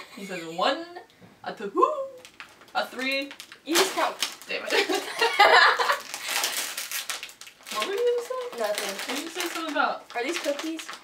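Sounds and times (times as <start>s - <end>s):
women laughing and talking: 0.0s - 1.0s, 4.6s - 6.0s
plastic snack wrapper crinkling: 2.2s - 11.0s.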